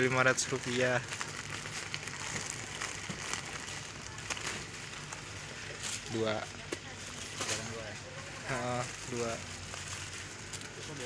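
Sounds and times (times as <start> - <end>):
plastic packets crinkling: 0.0 - 6.4, 7.1 - 11.0.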